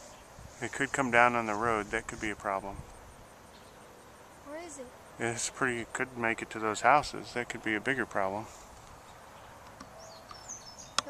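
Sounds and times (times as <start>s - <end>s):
high bird chirps: 9.0s - 11.0s.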